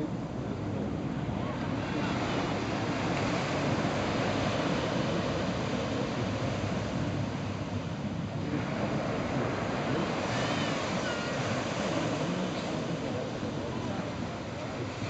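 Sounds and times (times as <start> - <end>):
ocean surf washing onto beach: 0.0 - 15.0
wind buffeting microphone: 0.0 - 15.0.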